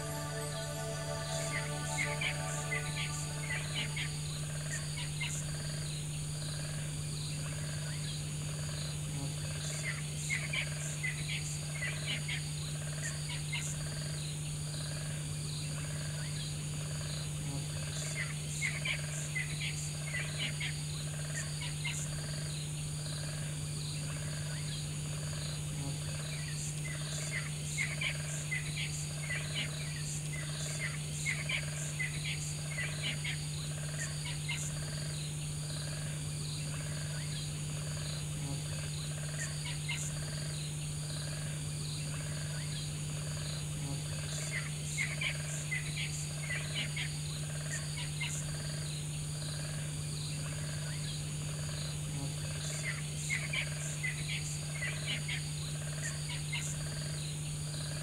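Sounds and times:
low steady hum: 0.0 - 7.5
high insect chorus: 17.9 - 58.0.

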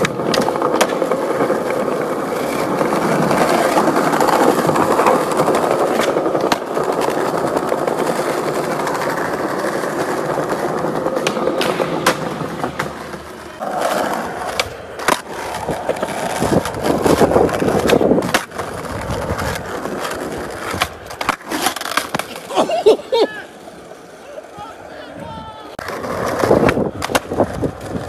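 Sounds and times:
skateboard clacking on ground: 0.0 - 22.8, 23.4 - 28.0
skateboard wheels rolling: 0.0 - 28.0.

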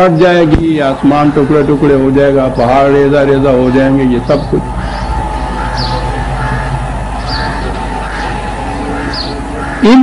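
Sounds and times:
old recording hum and hiss: 0.0 - 10.0
high bird chirps: 4.4 - 9.8.

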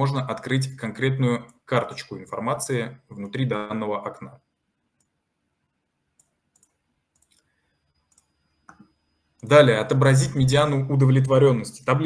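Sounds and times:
computer mouse clicking: 6.2 - 9.0.

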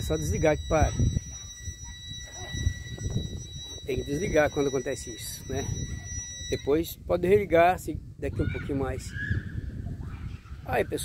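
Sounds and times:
high-pitched power unit whine: 0.0 - 6.9.

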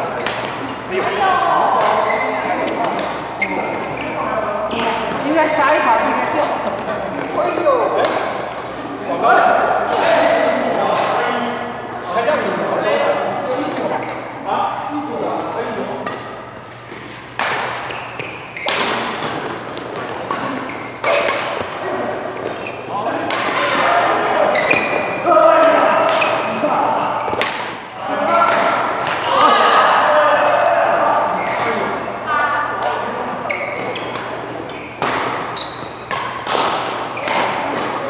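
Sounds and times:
voices talking and calling out: 0.0 - 38.0
badminton rackets hitting shuttlecock: 0.1 - 0.7, 7.9 - 8.6, 17.0 - 23.8, 24.5 - 26.6, 27.2 - 29.3, 33.5 - 38.0.

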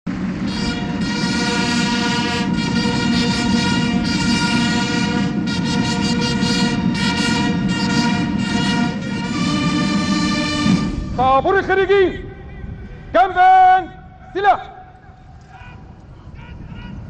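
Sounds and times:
brass band playing chords: 0.1 - 13.2.

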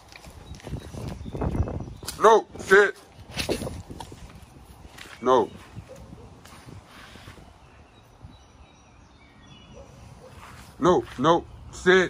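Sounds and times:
scuffing steps on concrete: 2.9 - 7.5, 10.2 - 11.5.

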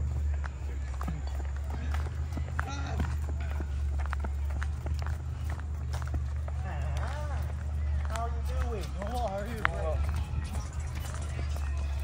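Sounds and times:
footsteps on paved path: 0.0 - 12.0.

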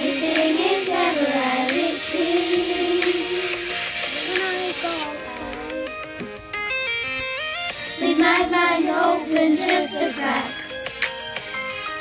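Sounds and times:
children singing pop song: 0.0 - 6.2, 7.7 - 11.2
synth backing: 0.0 - 12.0.

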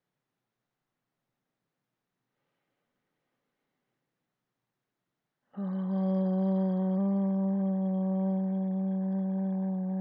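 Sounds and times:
low sustained meditation tone: 5.8 - 10.0.

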